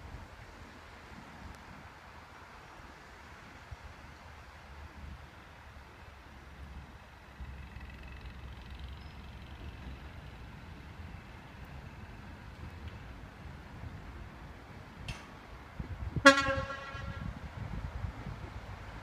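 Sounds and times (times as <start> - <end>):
distant train rumble: 1.9 - 19.0.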